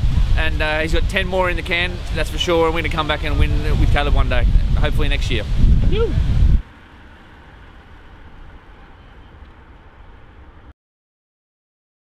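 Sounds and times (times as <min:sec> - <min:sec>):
low outdoor rumble: 0:00.0 - 0:10.7.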